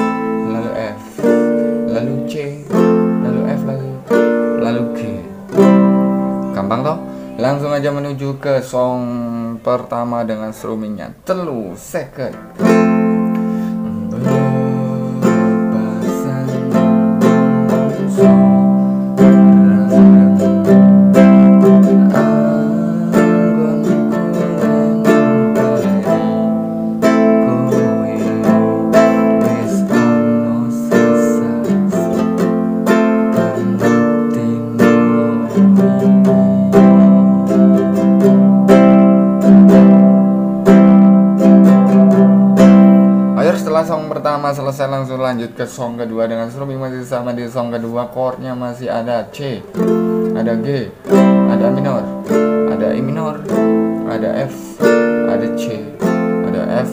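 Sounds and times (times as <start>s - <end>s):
acoustic guitar strumming: 0.0s - 10.6s, 11.5s - 56.9s.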